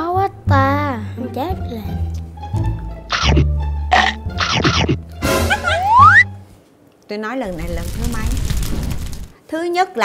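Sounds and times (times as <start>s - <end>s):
background music: 0.0s - 6.6s
cartoon rising whistle effect: 5.6s - 6.4s.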